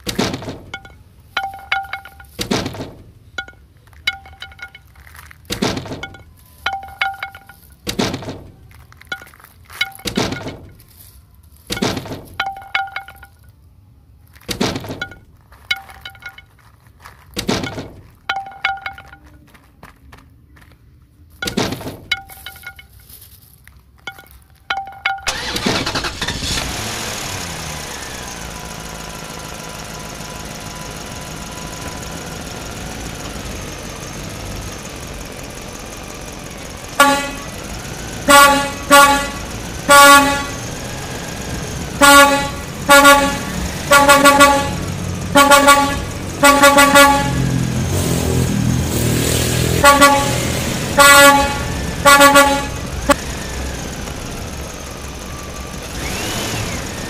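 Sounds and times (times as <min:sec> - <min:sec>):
truck engine running: 0:00.0 - 0:13.6, 0:14.4 - 0:23.2, 0:24.0 - 0:57.0
short horn toots: 0:37.0 - 0:37.6, 0:38.2 - 0:40.7, 0:41.9 - 0:47.6, 0:49.7 - 0:53.2.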